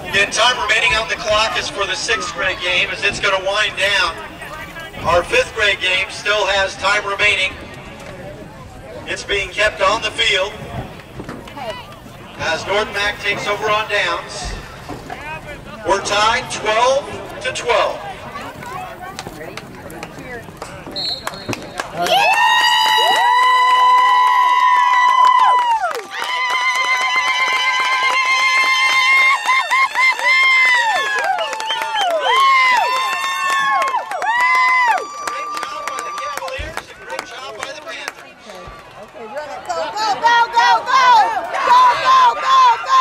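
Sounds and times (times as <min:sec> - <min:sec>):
young players cheering: 0:21.2 - 0:38.0, 0:39.2 - 0:43.0.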